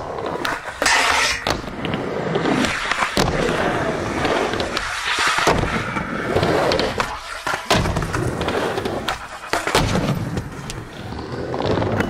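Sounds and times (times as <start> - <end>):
skateboard clacking on surface: 0.0 - 10.9
skateboard wheels rolling and grinding: 0.0 - 12.0.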